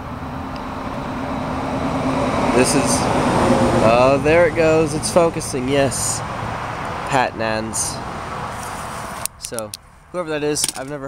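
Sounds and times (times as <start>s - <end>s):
freeway traffic rush: 0.0s - 11.0s.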